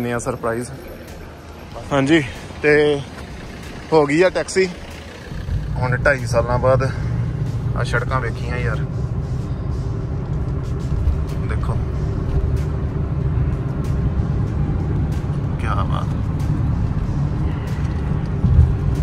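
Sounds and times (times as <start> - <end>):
car cabin road and engine rumble: 0.0 - 19.0.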